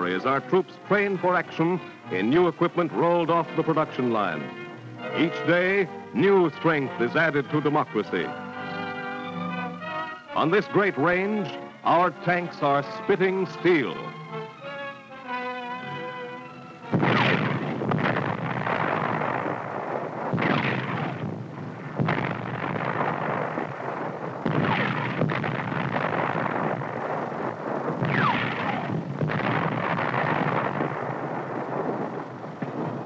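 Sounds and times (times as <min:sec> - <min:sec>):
orchestral music: 0:00.0 - 0:25.2
shells exploding: 0:16.8 - 0:33.0
tank guns firing: 0:16.8 - 0:33.0
continuous rumble: 0:16.9 - 0:33.0.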